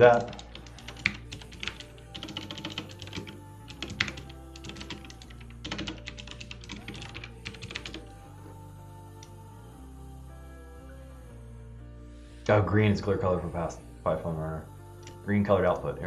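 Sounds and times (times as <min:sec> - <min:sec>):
typing on computer keyboard: 0:00.0 - 0:08.1
background music: 0:00.0 - 0:16.0.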